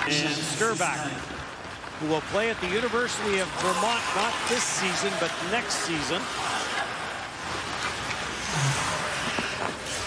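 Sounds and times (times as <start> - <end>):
skate blades scraping ice: 0.6 - 10.0.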